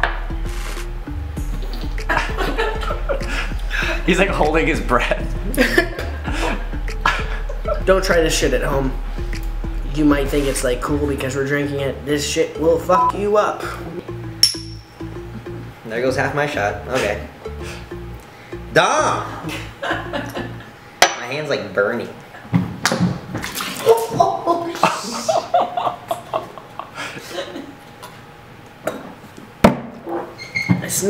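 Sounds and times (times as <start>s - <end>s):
background music with steady beat: 0.0s - 21.0s
shot glasses clinking: 14.3s - 14.9s.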